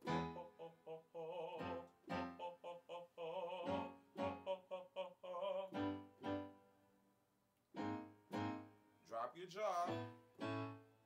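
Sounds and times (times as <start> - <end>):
piano chords: 0.0 - 2.8, 3.4 - 4.8, 5.4 - 6.7, 7.8 - 11.0
man singing vocal warm-up: 0.0 - 6.1, 9.1 - 10.1.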